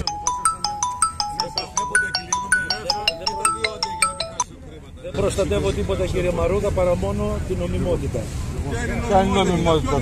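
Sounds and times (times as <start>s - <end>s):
mobile phone ringtone: 0.0s - 4.5s.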